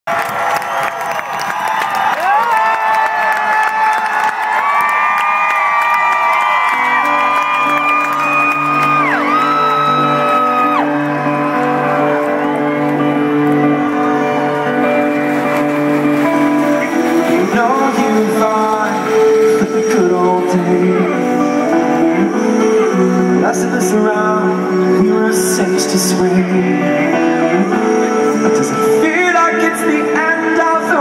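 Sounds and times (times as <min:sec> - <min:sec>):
crowd cheering and screaming: 0:00.1 - 0:31.0.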